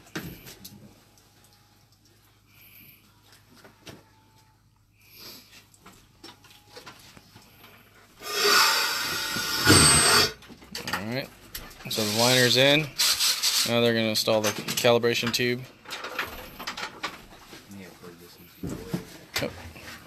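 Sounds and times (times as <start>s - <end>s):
compressed air hissing: 8.2s - 10.4s.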